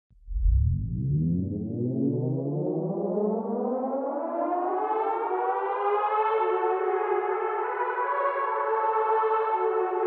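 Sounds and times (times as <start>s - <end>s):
siren-like rising tone: 0.2s - 4.8s.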